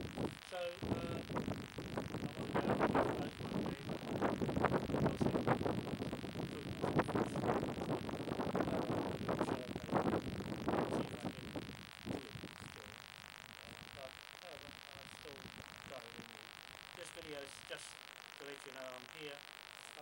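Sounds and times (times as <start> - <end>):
man talking: 0.4 - 1.4, 2.1 - 5.8, 6.4 - 13.0, 13.6 - 20.0.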